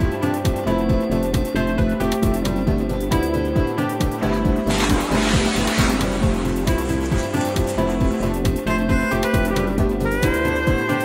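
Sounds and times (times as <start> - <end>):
background music with beat: 0.0 - 11.0
dog splashing into water: 4.7 - 8.8.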